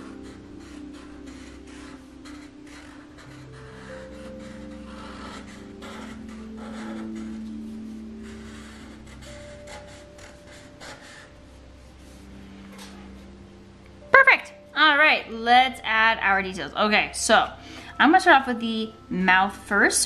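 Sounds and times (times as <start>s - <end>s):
marker rubbing across paper: 0.0s - 12.3s
soft music of held notes: 0.0s - 20.0s.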